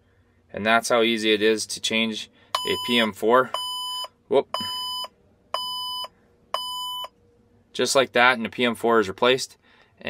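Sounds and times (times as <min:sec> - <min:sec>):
electronic warning beeps: 0:02.6 - 0:07.2.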